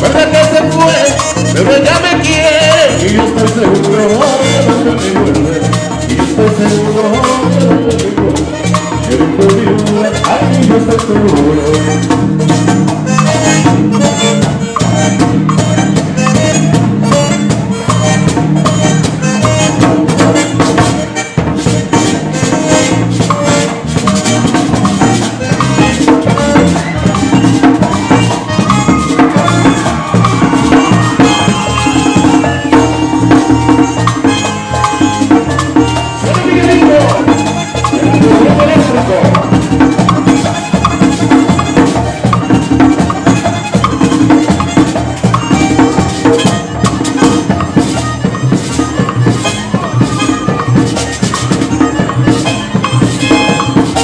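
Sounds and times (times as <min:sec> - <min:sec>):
hand drums: 0:00.0 - 0:54.0
upbeat latin dance music: 0:00.0 - 0:54.0.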